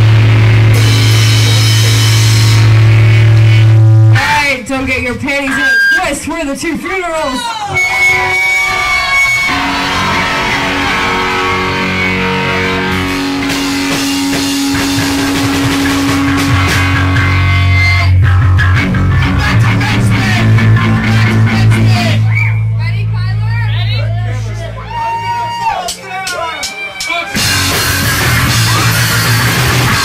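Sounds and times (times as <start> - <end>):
electric guitars sustained notes: 0.0 - 4.4, 7.7 - 25.3, 27.3 - 30.0
low bass notes: 0.0 - 6.4, 7.7 - 26.6, 27.3 - 30.0.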